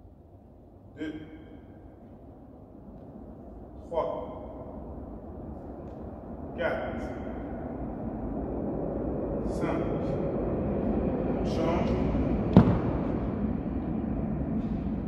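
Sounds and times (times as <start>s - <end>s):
gym hall room noise: 0.0s - 15.0s
man's voice: 11.4s - 12.3s
sharp knock: 12.5s - 13.2s.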